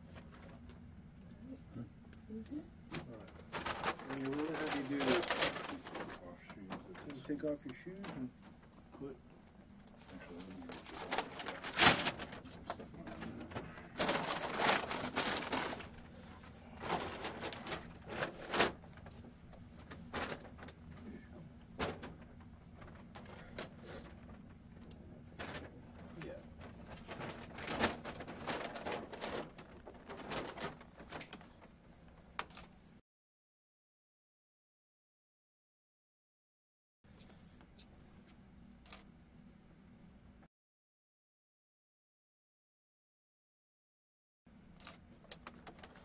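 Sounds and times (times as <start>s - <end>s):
clothes rustling and handling: 2.9s - 9.1s, 9.8s - 24.6s, 25.2s - 33.0s
scrapes and crinkles: 3.0s - 8.8s, 9.8s - 24.5s, 25.2s - 33.0s, 44.8s - 46.0s.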